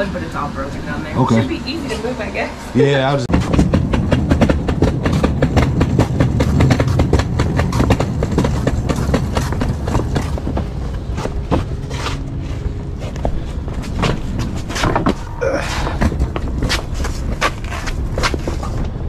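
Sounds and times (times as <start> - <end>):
footsteps: 3.2 - 19.0.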